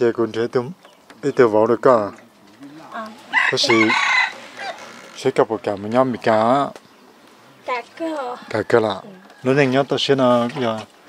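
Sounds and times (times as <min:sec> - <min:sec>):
rooster crowing: 0:03.0 - 0:05.1, 0:08.3 - 0:10.0.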